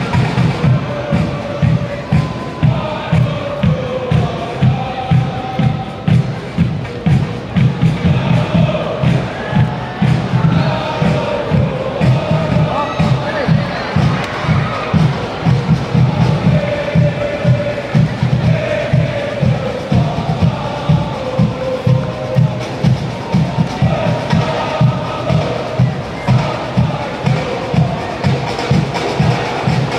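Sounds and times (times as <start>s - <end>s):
crowd chanting: 0.0s - 29.9s
steady drumbeat: 0.0s - 29.9s.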